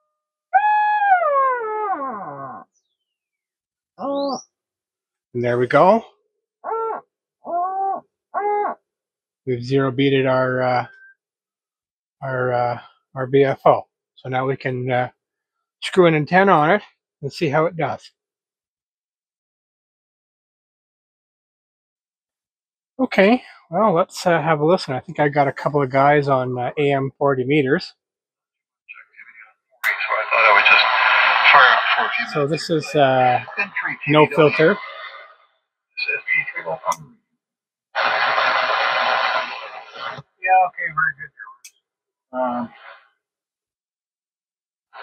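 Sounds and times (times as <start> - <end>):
radio beat note tones: 28.9 - 35.1, 38.0 - 41.7.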